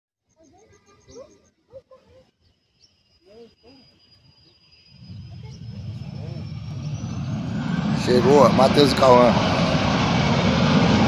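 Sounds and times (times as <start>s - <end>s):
high whine rising in pitch: 3.2s - 11.0s
jet engines roaring: 3.5s - 11.0s.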